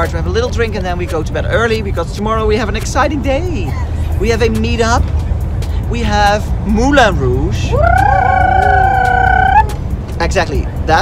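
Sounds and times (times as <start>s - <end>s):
bus engine rumble: 0.0s - 11.0s
person singing high note: 7.7s - 9.8s.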